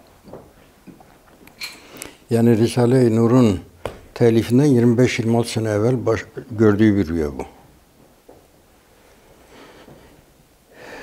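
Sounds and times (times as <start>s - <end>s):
faint hiss and hum: 0.0s - 11.0s.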